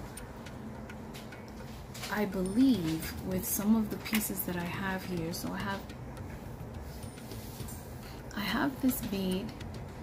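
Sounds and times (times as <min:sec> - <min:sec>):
faint irregular clicks: 0:00.0 - 0:10.0
steady low hum: 0:00.0 - 0:10.0.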